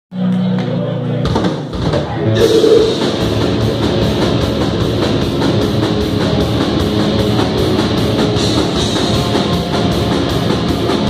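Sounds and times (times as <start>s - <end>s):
heavy metal band playing: 2.3s - 11.0s
droning guitar note: 2.4s - 3.3s.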